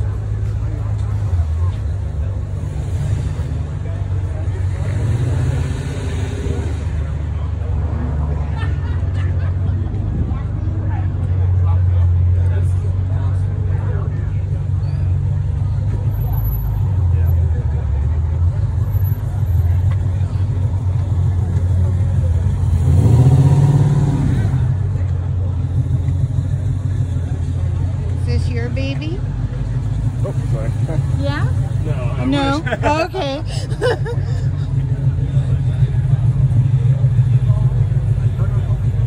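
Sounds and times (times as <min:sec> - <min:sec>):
car engine idling and revving: 0:00.0 - 0:39.0.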